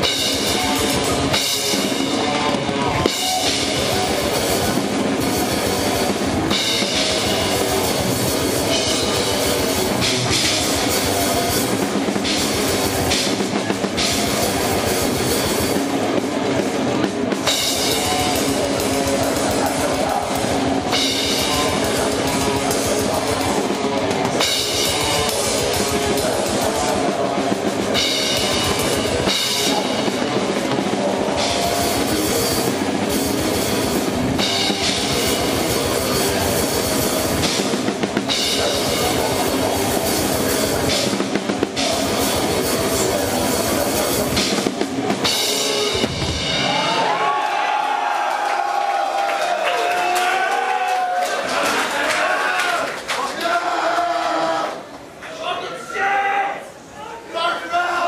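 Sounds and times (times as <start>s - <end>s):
distorted guitars: 0.0s - 48.4s
fast metal drumming: 0.0s - 48.4s
metal band playing: 0.0s - 50.7s.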